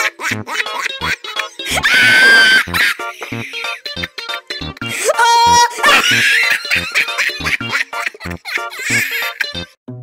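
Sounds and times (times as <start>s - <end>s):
plucked music notes: 0.0s - 1.8s, 2.6s - 10.0s
rapid giggling laughter: 0.0s - 5.0s, 5.7s - 9.7s
comedy background music: 0.0s - 10.0s.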